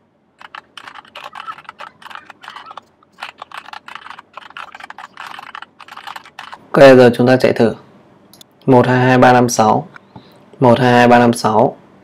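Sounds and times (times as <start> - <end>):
keyboard typing: 0.4 - 6.7.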